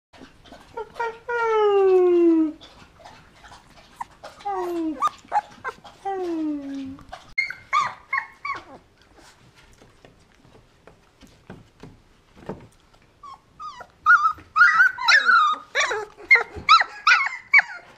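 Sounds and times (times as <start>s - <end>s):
puppy yelping: 3.4s - 6.1s, 7.0s - 8.8s, 13.2s - 17.9s
puppy howling: 13.6s - 17.9s.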